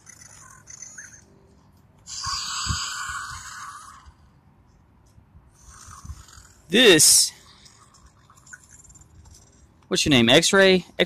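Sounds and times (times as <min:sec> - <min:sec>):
toy electronic growl: 0:02.0 - 0:04.3, 0:05.5 - 0:06.8.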